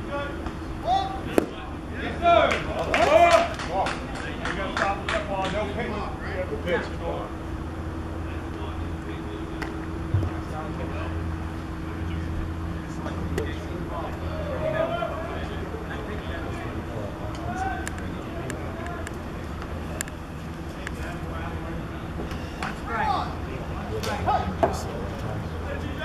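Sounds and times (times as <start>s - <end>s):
low mechanical hum: 0.0s - 26.0s
people calling and chattering: 0.0s - 26.0s.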